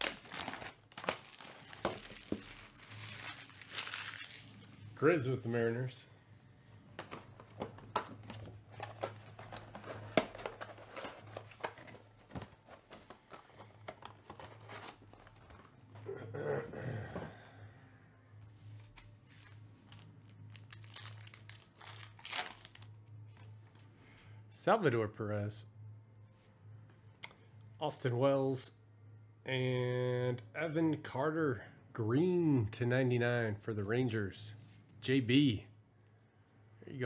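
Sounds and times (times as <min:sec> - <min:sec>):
packaging crinkling and tearing: 0:00.0 - 0:04.7, 0:18.9 - 0:23.0.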